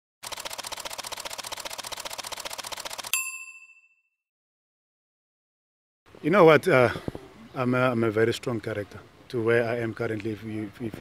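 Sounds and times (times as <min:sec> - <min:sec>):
fast mechanical clicking: 0:00.2 - 0:03.1
bright bell ding: 0:03.1 - 0:04.2.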